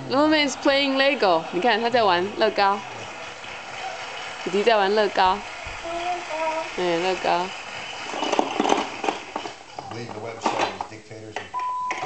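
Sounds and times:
plastic blocks clattering: 0:08.0 - 0:09.6.

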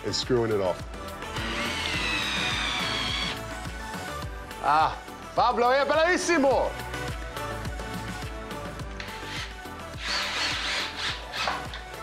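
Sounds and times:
background music with steady beat: 0:00.0 - 0:12.0
cordless drill driving a screw: 0:01.3 - 0:03.4, 0:09.0 - 0:11.8.

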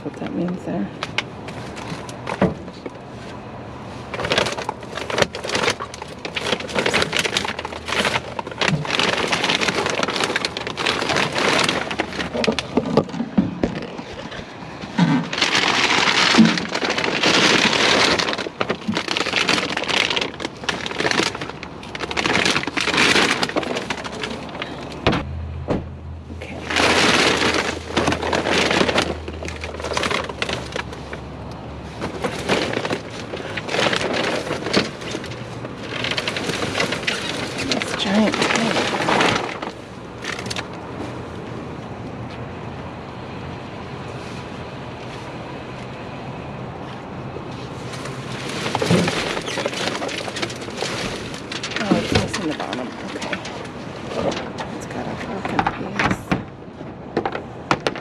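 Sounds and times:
plastic bags rustling: 0:00.0 - 0:25.2, 0:26.4 - 0:41.6, 0:46.8 - 0:58.0.

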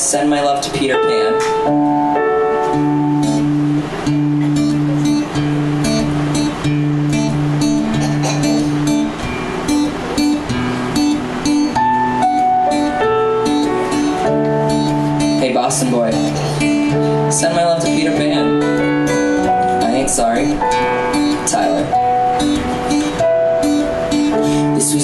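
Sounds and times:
acoustic guitar strumming: 0:00.0 - 0:25.0
electric keyboard chords: 0:00.0 - 0:25.0.

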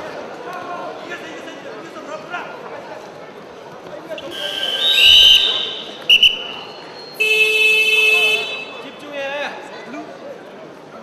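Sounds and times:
referee's whistle blasts: 0:04.2 - 0:09.0
buzzer sounding: 0:07.1 - 0:08.8.

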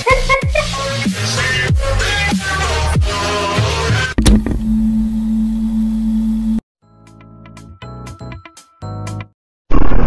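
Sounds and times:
music: 0:00.0 - 0:04.5, 0:06.8 - 0:09.4.

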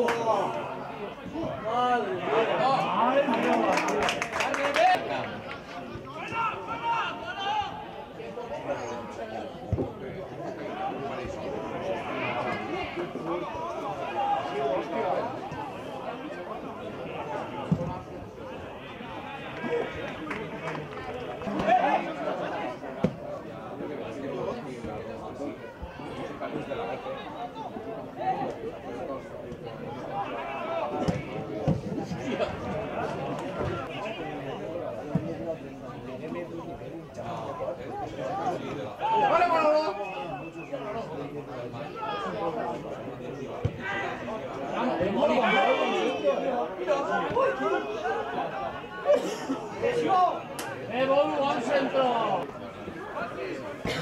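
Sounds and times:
indistinct chatter: 0:00.0 - 0:54.0.

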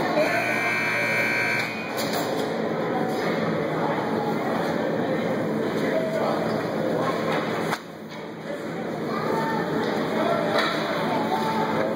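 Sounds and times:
ice rink buzzer: 0:00.0 - 0:02.0
crowd chatter and bustle: 0:00.0 - 0:11.9.

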